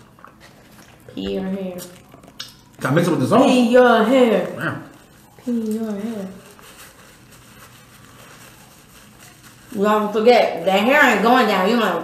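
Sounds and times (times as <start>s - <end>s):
people chewing food: 0.0s - 10.6s.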